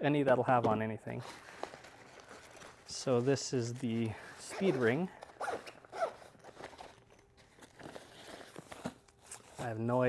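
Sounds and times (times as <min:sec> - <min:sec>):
nylon bag rustling: 0:01.2 - 0:09.8
zipper being pulled: 0:04.4 - 0:07.0.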